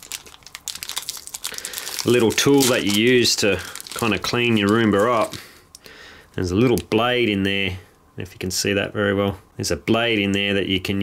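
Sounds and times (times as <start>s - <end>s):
plastic bag crinkling: 0.0s - 5.6s.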